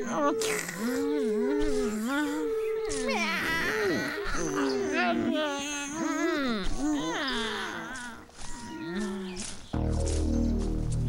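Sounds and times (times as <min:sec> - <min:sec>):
cartoon hyena whine: 0:00.0 - 0:08.2
cartoon hyena cry: 0:00.0 - 0:09.2.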